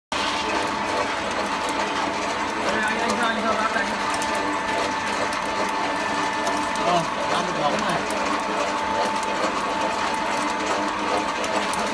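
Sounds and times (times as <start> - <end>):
oil press mechanical hum: 0.1 - 11.9.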